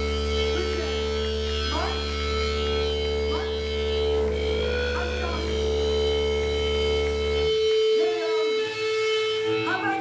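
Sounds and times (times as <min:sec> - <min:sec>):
band playing sustained chord: 0:00.0 - 0:10.0
low bass drone: 0:00.0 - 0:10.0.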